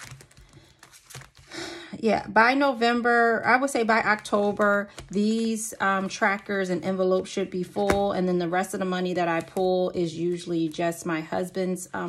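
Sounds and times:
plastic binder pages crinkling: 0.0 - 1.6.

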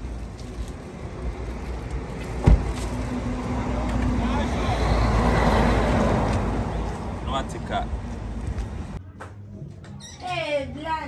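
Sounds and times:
low traffic rumble: 0.0 - 11.0
sharp thump: 2.4 - 2.8
vehicle passing close by: 2.6 - 8.0.

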